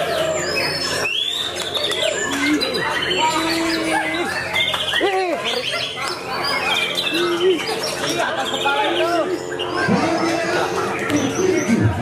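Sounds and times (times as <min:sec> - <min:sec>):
bird whistling song: 0:00.0 - 0:10.0.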